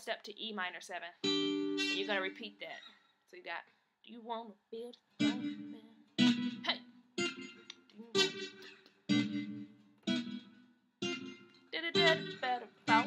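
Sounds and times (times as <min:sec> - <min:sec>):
acoustic guitar chords ringing: 0:01.2 - 0:02.4, 0:05.2 - 0:13.0.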